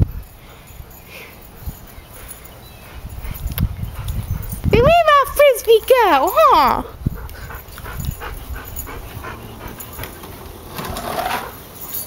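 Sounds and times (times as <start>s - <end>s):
dog panting: 0.1s - 10.6s.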